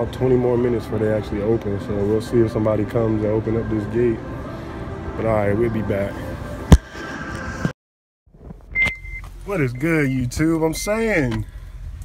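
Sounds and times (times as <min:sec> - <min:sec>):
faint background hubbub: 0:00.0 - 0:06.8
short high beep: 0:08.8 - 0:10.2.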